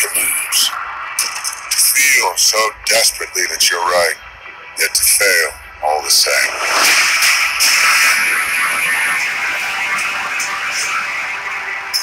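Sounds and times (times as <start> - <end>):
thin high whine: 6.1 - 12.0.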